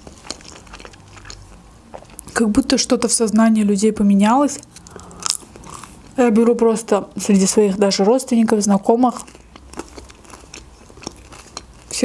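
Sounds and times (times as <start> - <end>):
person chewing food: 0.0 - 2.4, 4.6 - 6.2, 9.1 - 12.0.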